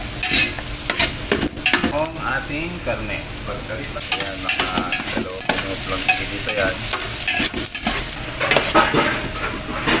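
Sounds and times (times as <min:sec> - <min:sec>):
onion sizzling in oil: 0:00.0 - 0:10.0.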